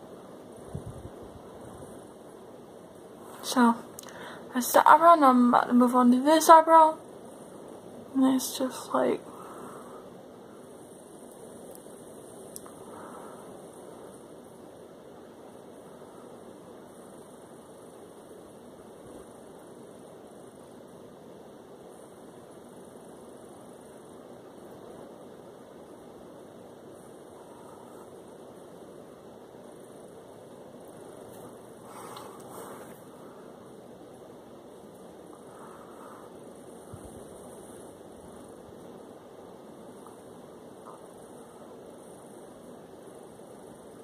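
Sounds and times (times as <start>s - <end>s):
room noise hiss: 0.0s - 44.0s
faint click: 12.5s - 12.8s.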